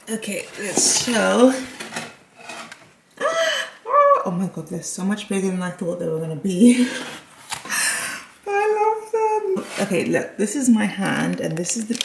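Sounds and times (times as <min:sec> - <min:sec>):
woman's excited exclamation: 0:03.2 - 0:04.4.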